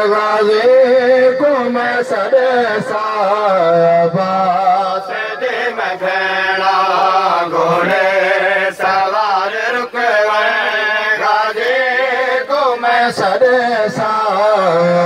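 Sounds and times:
man chanting through loudspeaker: 0.0s - 15.0s.

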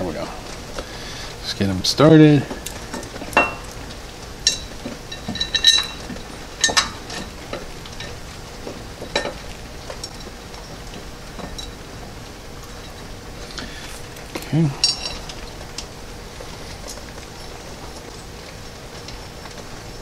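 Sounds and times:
rain hissing: 0.0s - 20.0s.

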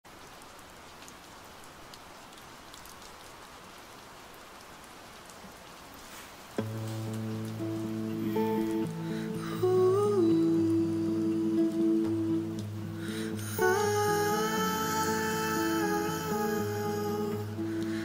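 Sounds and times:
soft steady rain: 0.0s - 18.0s
raindrop ticks: 0.1s - 16.6s
classical guitar strumming: 6.6s - 18.0s.

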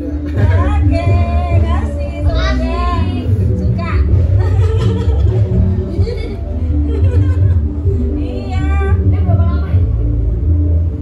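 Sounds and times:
backing music with heavy bass: 0.0s - 11.0s.

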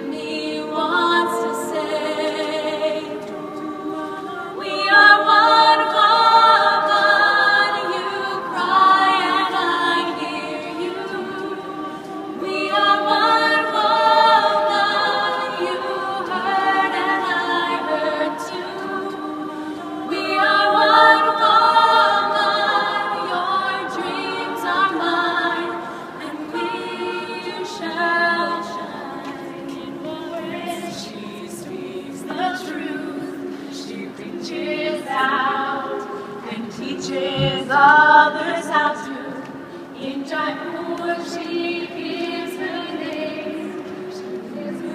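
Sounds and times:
women singing a cappella harmony: 0.0s - 44.9s.

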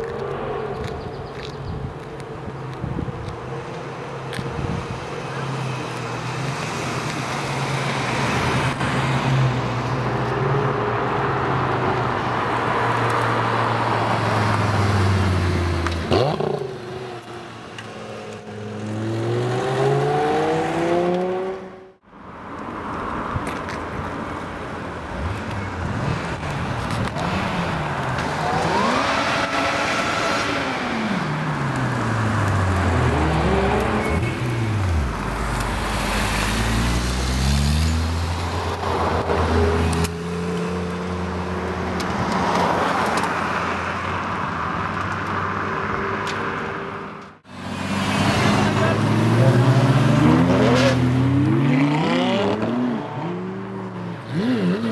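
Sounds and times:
sports car engines revving past: 5.4s - 22.0s, 25.2s - 44.3s, 44.9s - 54.9s.

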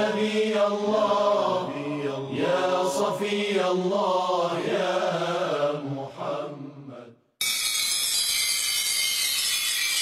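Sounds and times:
high-pitched shimmering hiss: 7.4s - 10.0s.

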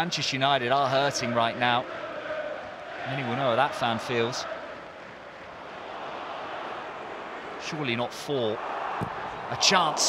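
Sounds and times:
stadium crowd roar: 0.1s - 10.0s.

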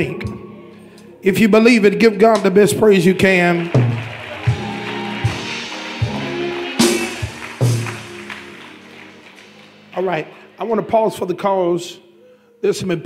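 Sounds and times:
church music chords: 0.0s - 12.8s
congregation clapping: 2.4s - 10.7s.

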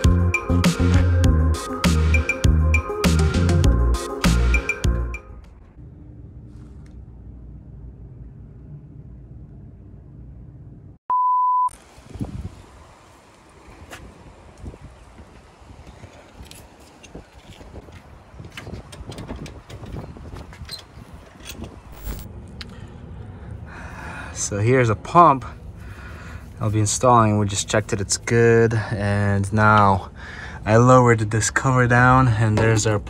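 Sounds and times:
low steady rumble: 5.4s - 11.0s.

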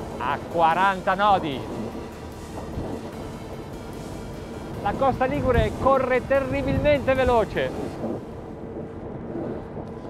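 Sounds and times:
outboard engines running: 0.0s - 10.0s
water rushing past boat: 0.0s - 10.0s
wind rushing: 0.0s - 10.0s.

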